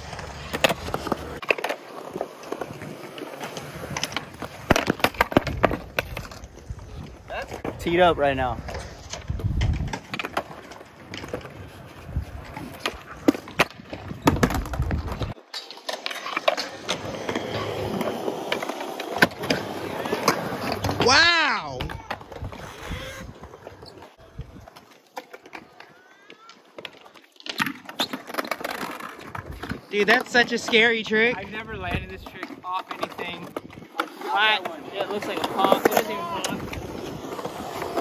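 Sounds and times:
skateboard knocks and clacks: 0.0 - 8.0, 8.6 - 38.0
skateboard wheels rolling on concrete: 0.0 - 38.0
person shouting: 21.0 - 22.2.

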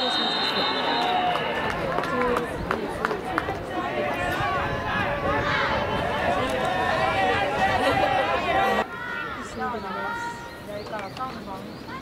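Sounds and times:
referee's whistle blast: 0.0 - 1.3
voices shouting: 3.1 - 10.7.

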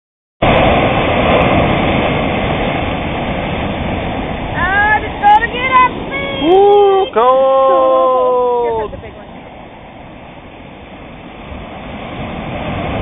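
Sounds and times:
sea surf washing onto beach: 0.4 - 13.0
person crying out: 6.4 - 9.0.

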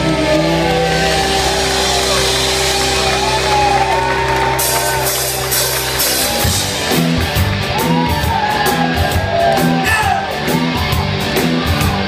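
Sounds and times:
band playing a beat: 0.0 - 12.0
rock band electric guitar chord: 0.0 - 12.0
crowd shouting: 7.6 - 12.0.

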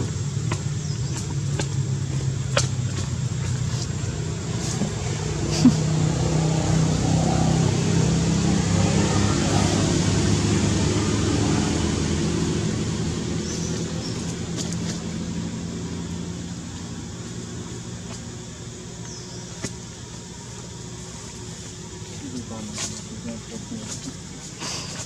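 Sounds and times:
vehicle engine humming: 0.0 - 25.0.

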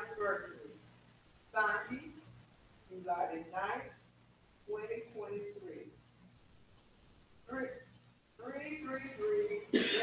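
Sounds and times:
person speaking: 0.0 - 0.8, 1.5 - 4.0, 4.6 - 6.0, 7.4 - 10.0
sharp cough: 9.7 - 10.0.

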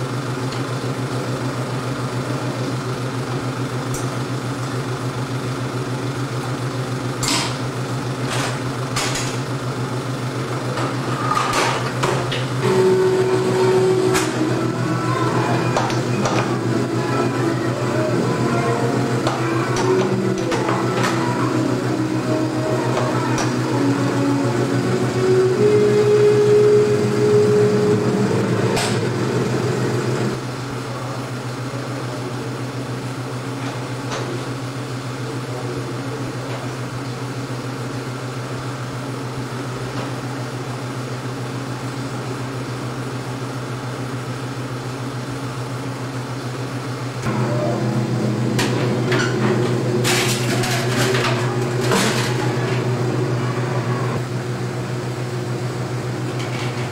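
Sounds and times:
film projector humming: 0.0 - 56.9.

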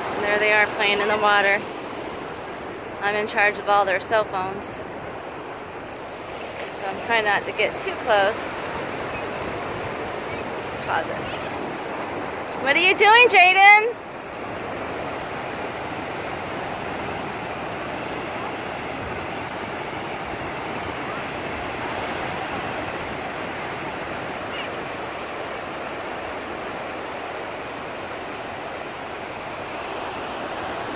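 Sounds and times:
ocean surf breaking: 0.0 - 30.9.

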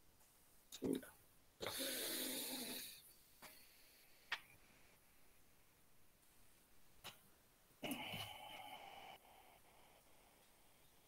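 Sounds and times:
person breathing noisily: 1.6 - 4.2, 7.8 - 11.0.

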